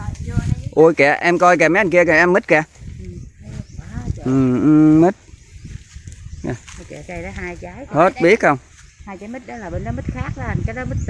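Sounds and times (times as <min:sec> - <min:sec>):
people talking: 0:00.0 - 0:05.1, 0:06.4 - 0:11.0.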